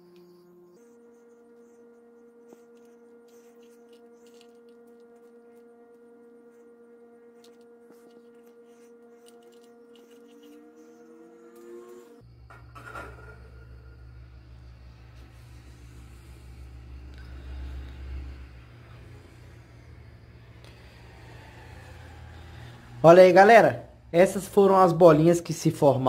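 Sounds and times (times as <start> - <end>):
steady hum: 0.0 - 26.0
low rumbling hum: 0.1 - 23.0.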